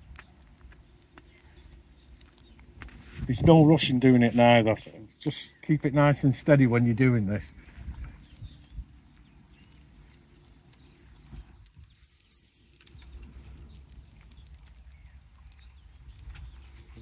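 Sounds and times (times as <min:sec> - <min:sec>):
birds chirping: 0:00.0 - 0:17.0.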